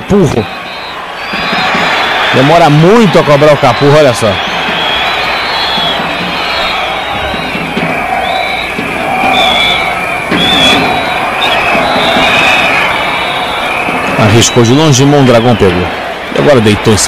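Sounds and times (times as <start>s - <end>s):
stadium crowd chanting and singing: 4.4s - 17.0s.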